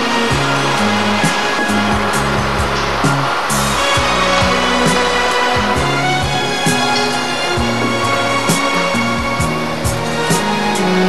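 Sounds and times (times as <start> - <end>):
music with a steady beat: 0.0 - 11.0.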